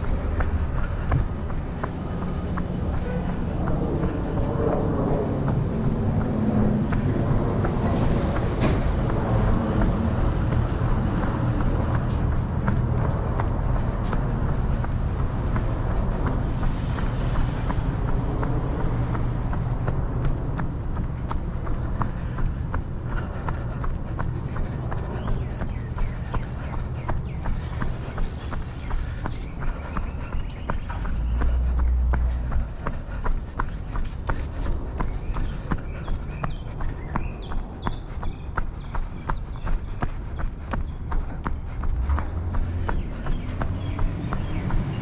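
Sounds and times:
footsteps on concrete: 0.0 - 45.0
street traffic rumble: 0.0 - 45.0.

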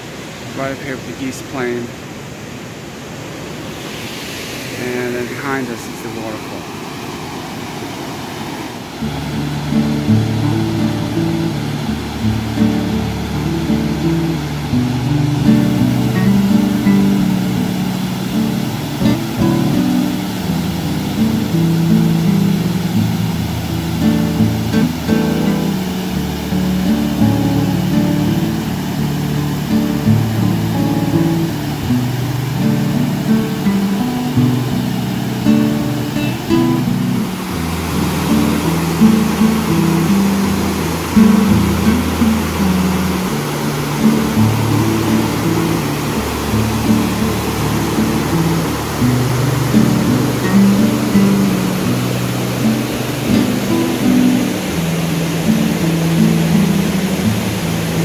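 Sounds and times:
water rushing over weir: 0.0 - 58.0
guitar music with low notes: 9.0 - 58.0.

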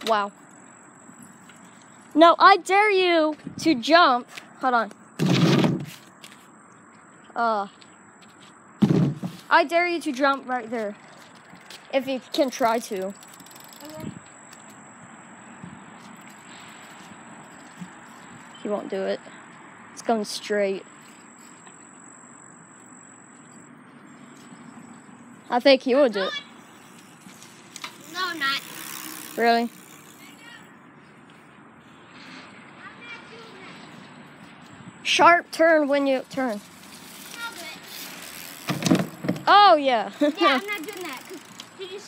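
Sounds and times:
outdoor background hiss: 0.0 - 42.0
distant voices calling out: 9.5 - 38.6, 39.4 - 42.0.

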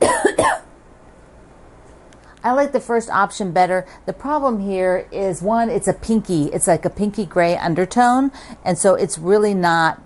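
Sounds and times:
woman coughing: 0.0 - 0.7.

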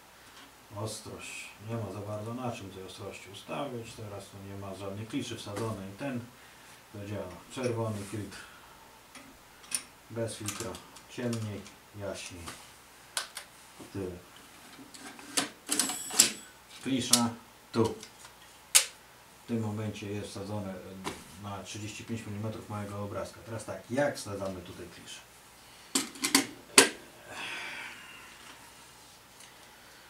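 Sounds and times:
soft scraping rustle: 7.5 - 8.4.

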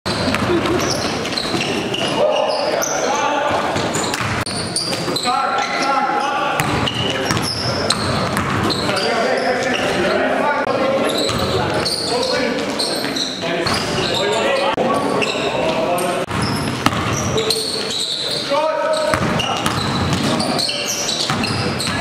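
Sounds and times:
sneakers squeaking: 0.0 - 22.0
basketball bouncing on gym floor: 0.1 - 2.1, 3.7 - 5.1, 6.6 - 9.0, 16.3 - 17.4, 19.0 - 20.5, 21.3 - 22.0.

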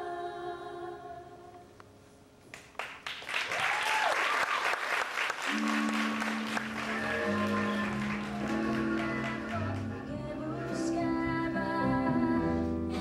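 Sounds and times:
audience applauding: 2.5 - 10.2
held instrumental chords: 5.5 - 13.0.

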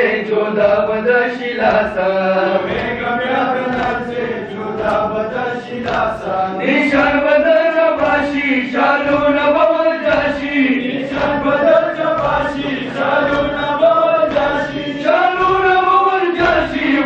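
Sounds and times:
men chanting a lament: 0.0 - 17.0
hands beating chests: 1.6 - 17.0.

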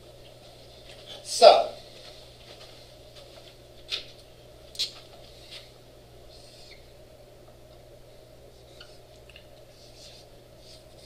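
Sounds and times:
low room hum: 0.0 - 11.0
marker squeaking on whiteboard: 8.7 - 9.0.

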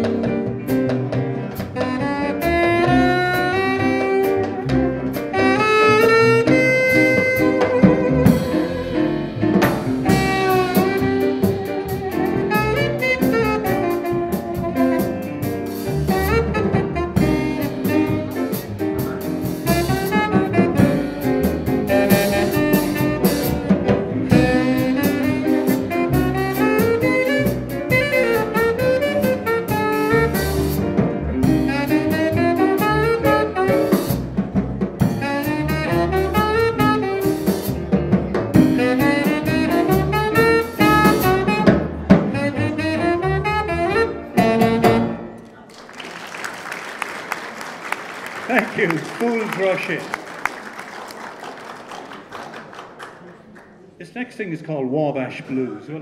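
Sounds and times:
drum kit: 0.0 - 45.3
double bass: 0.0 - 45.4
piano: 0.0 - 53.3
saxophone: 1.5 - 34.4, 35.0 - 37.9, 38.6 - 45.4.

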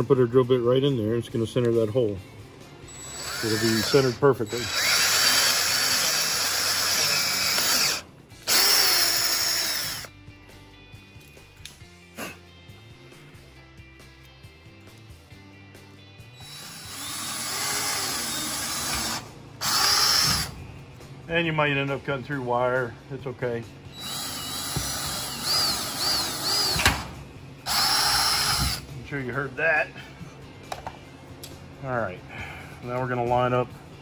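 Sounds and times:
cordless drill drilling wood: 2.9 - 10.1, 16.4 - 20.5, 24.0 - 26.9, 27.7 - 28.8
drill bit hitting wire mesh: 3.2 - 10.0, 24.4 - 27.1.

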